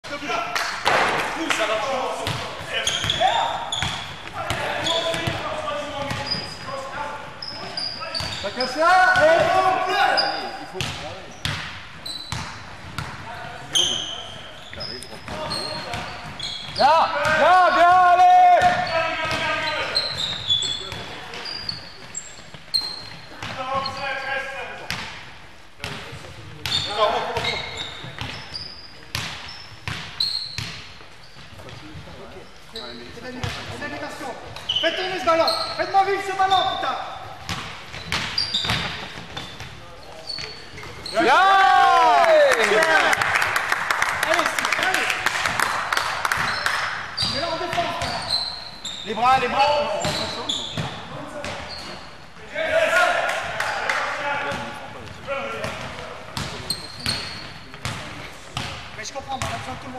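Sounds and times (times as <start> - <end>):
sneakers squeaking: 1.7 - 25.2, 25.8 - 42.6, 46.3 - 52.5, 54.5 - 59.9
basketball bouncing on wooden floor: 6.0 - 6.4
players shouting: 41.0 - 43.3, 52.5 - 54.7.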